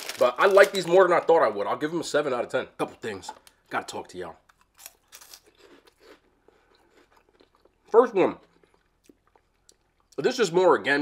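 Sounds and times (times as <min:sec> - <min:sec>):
crunchy snack being chewed: 0:04.5 - 0:10.2.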